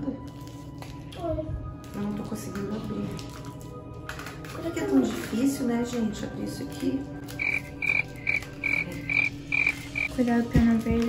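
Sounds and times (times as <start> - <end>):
frog calling: 7.4 - 10.1.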